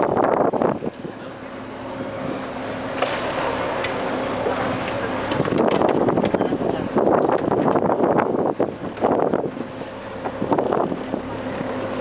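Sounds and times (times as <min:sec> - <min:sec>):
wind buffeting microphone: 0:00.0 - 0:02.6, 0:03.2 - 0:12.0
motorboat engine running: 0:00.0 - 0:12.0.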